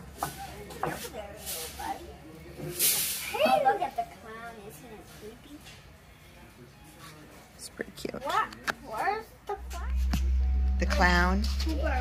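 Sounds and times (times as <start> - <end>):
soft indistinct voices: 0.0 - 12.0.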